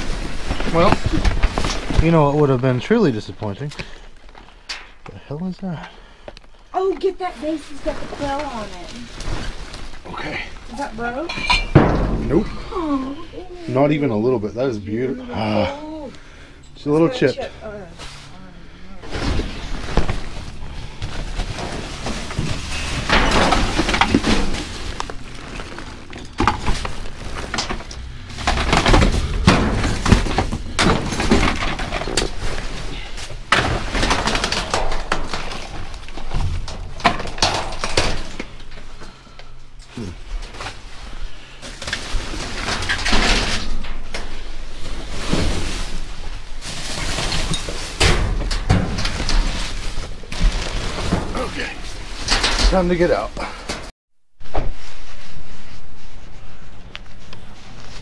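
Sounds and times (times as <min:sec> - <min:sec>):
plastic bags and paper rustling: 0:00.0 - 0:11.3, 0:16.9 - 0:53.9
knocks and glass clinks: 0:11.3 - 0:12.4.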